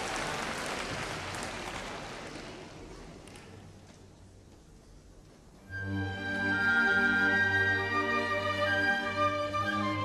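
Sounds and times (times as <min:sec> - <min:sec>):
audience applauding: 0:00.0 - 0:03.5.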